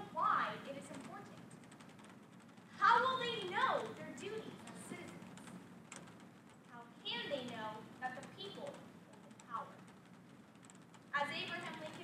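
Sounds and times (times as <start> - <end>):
woman speaking: 11.2 - 12.0.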